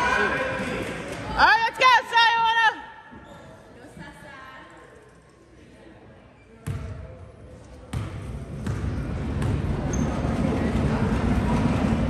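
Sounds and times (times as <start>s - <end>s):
murmur of voices: 3.6s - 12.0s.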